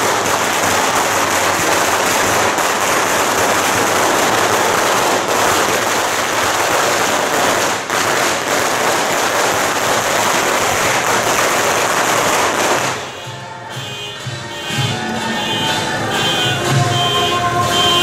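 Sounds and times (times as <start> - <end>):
firecrackers crackling: 0.0 - 18.0.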